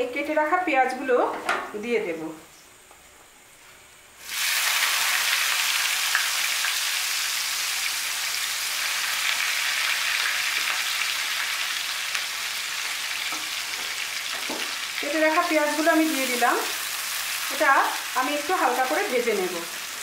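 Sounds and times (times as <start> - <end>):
onions sizzling in hot oil: 4.2 - 20.0.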